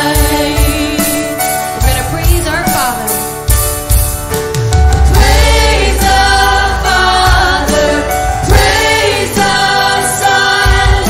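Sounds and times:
group singing with live band: 0.0s - 1.4s, 5.1s - 11.0s
deep drum beats: 0.0s - 11.0s.

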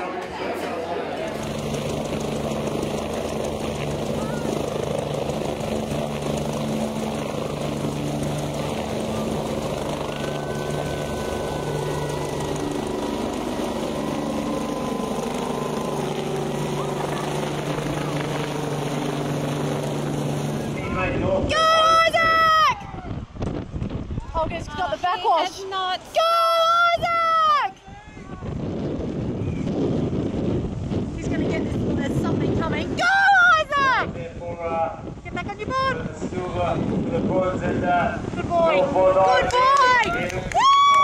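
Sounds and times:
helicopter hovering: 0.0s - 27.7s, 28.3s - 41.0s.

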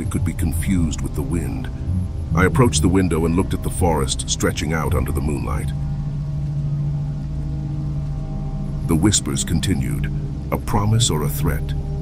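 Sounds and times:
dark ambient drone music: 0.0s - 12.0s
low rumble: 0.0s - 12.0s.

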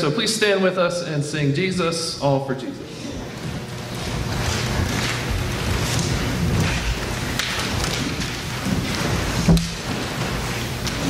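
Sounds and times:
congregation rustling and shuffling: 0.0s - 11.0s.

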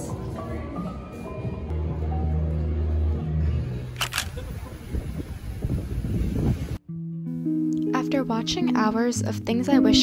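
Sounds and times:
background music: 0.0s - 4.7s, 6.8s - 10.0s.

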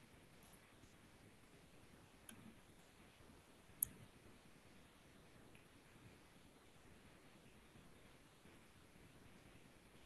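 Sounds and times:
small clicks: 2.2s - 2.6s.

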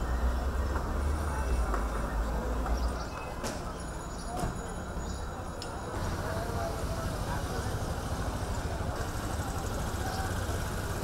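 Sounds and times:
indistinct distant voices: 0.0s - 11.0s
street background noise: 0.0s - 11.0s.

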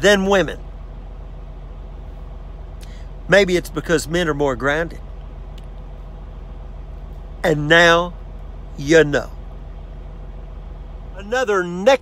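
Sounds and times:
engine idling hum: 0.0s - 12.0s
faint click: 5.5s - 5.9s.

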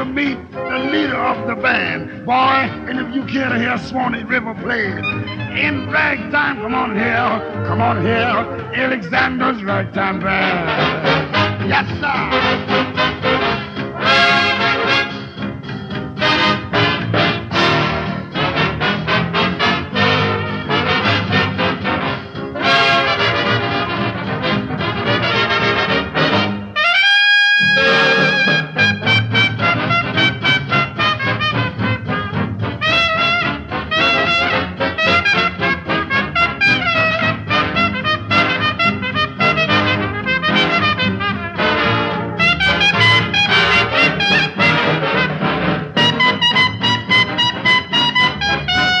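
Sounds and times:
brass band swing music: 0.0s - 49.0s.

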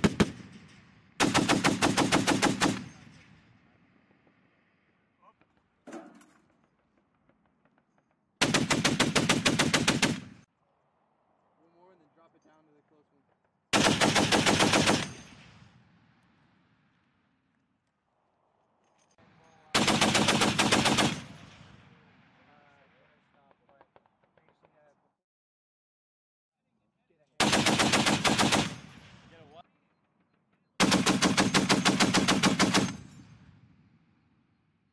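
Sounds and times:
machine gun automatic fire: 0.0s - 3.2s, 8.4s - 10.4s, 13.7s - 15.6s, 19.7s - 21.6s, 27.4s - 29.2s, 30.7s - 33.3s
gunfire echo: 0.0s - 3.8s, 13.7s - 16.7s, 27.4s - 29.6s.

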